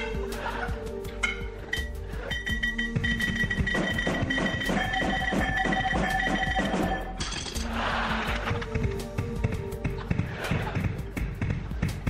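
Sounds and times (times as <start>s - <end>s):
music with quick beat: 1.2s - 7.2s.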